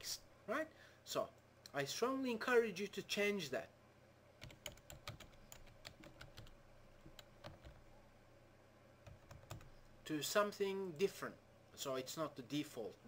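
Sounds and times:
keyboard typing: 4.4s - 7.9s, 9.0s - 9.8s.

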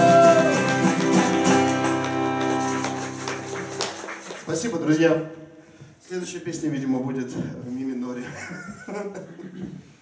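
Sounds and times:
acoustic guitar strummed: 0.0s - 4.0s.

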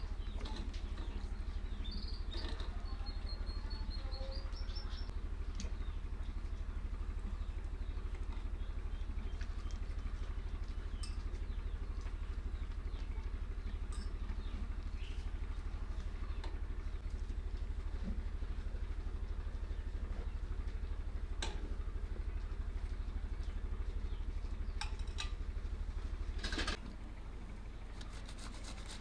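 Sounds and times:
low engine rumble: 0.0s - 29.0s.

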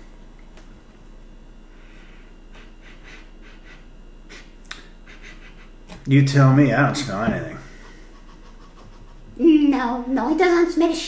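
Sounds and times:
man sniffing: 1.8s - 5.9s.

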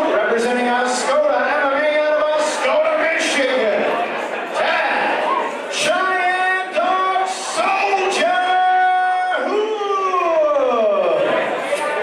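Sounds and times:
ring announcer's amplified voice: 0.0s - 12.0s.

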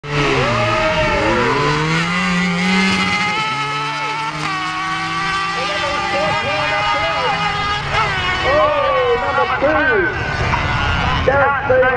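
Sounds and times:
motorcycle engine revving high: 0.0s - 11.9s.

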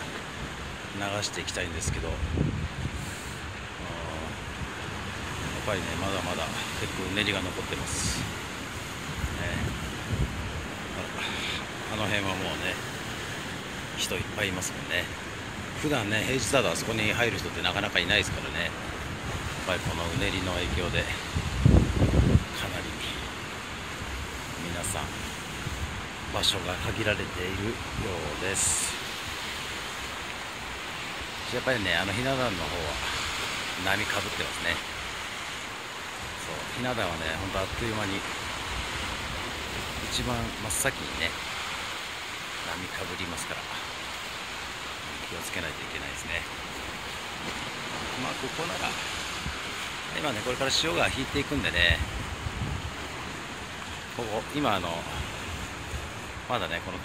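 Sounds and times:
surf breaking over rocks: 0.0s - 57.0s.

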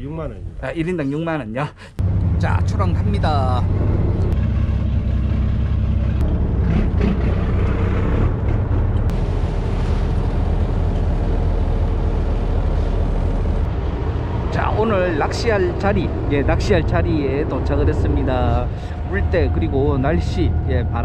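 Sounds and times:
boat engine droning: 2.0s - 21.0s
water noise from hull: 9.1s - 14.5s.

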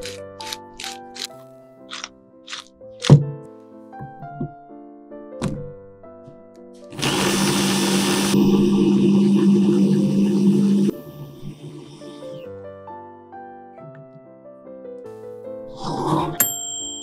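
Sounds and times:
background music: 0.0s - 8.8s
electric blender chopper running: 6.9s - 12.4s.

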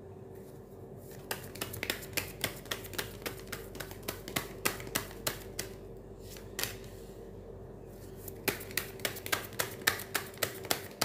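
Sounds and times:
cards being shuffled: 1.1s - 6.9s.

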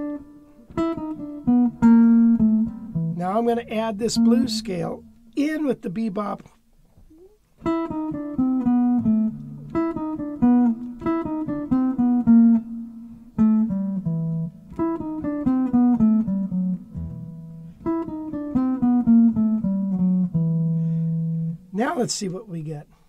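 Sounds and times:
jazz guitar single-note runs: 0.0s - 6.4s, 7.6s - 22.5s.

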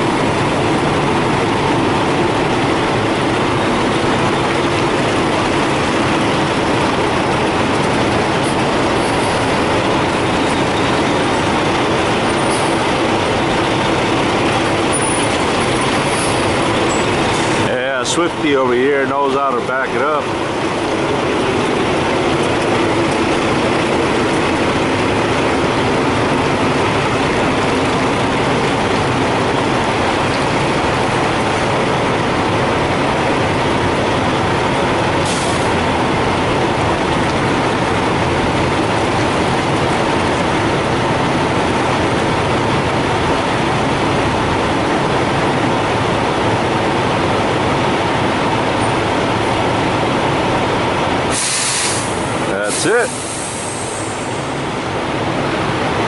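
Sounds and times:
diesel truck engines idling: 0.0s - 56.0s
brief high hiss: 51.3s - 52.2s.

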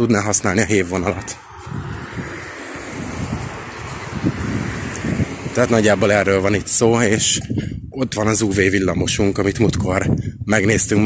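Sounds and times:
street noise: 0.0s - 7.9s
wind buffeting microphone: 0.0s - 11.0s.

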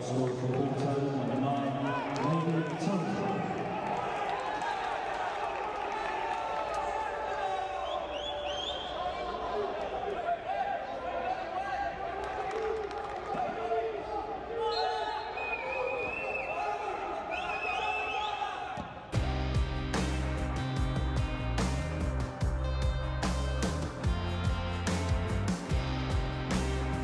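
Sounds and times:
excited match commentary: 0.0s - 18.8s
match crowd sound: 0.0s - 27.0s
heavy bass music: 19.2s - 27.0s.

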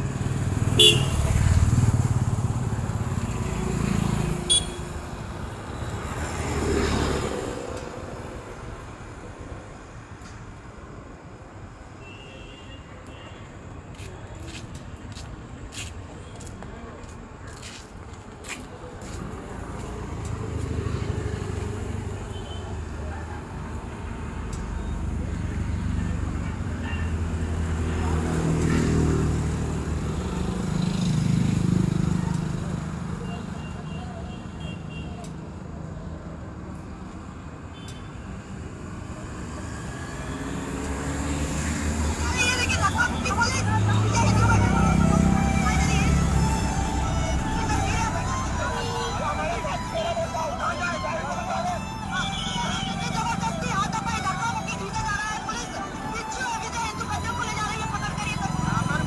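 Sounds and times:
vehicle engines passing: 0.0s - 12.0s, 13.4s - 59.0s.

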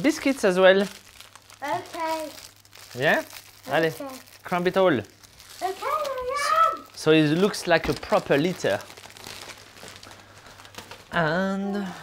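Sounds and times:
plastic packet crinkling: 0.0s - 11.3s.

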